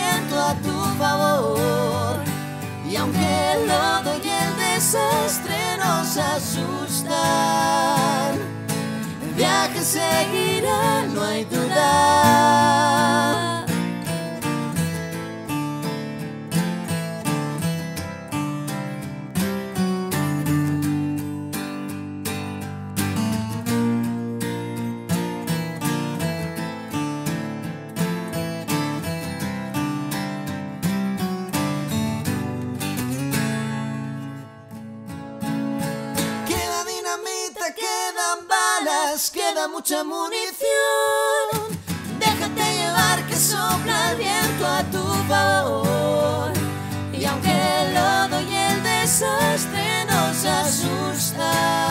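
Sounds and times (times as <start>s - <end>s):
acoustic guitar strumming: 0.0s - 37.4s, 41.6s - 51.9s.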